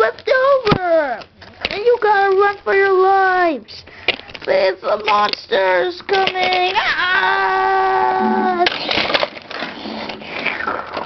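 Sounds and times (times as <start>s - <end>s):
child making vocal sound effects: 6.6s - 8.8s.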